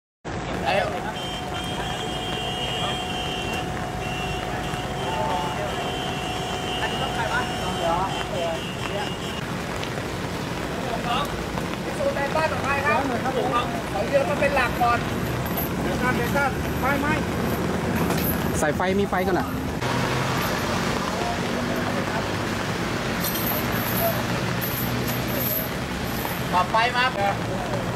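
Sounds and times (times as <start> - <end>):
vehicle engine rumble: 0.3 - 27.9
men talking: 0.4 - 9.4, 10.6 - 19.6, 20.9 - 27.9.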